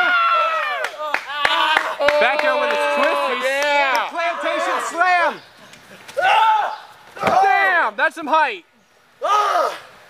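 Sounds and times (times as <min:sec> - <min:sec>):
man shouting: 0:01.5 - 0:05.4, 0:06.2 - 0:07.9.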